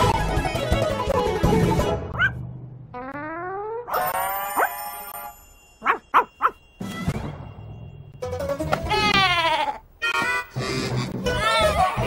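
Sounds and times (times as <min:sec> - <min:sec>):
cartoon score music: 0:08.2 - 0:12.0.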